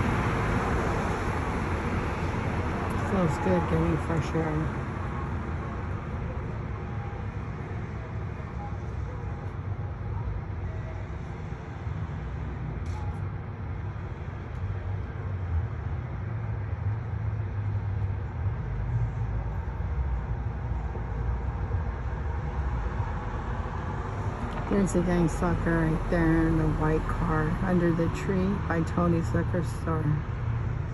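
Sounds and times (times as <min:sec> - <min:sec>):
low street vehicle rumble: 0:00.0 - 0:30.9.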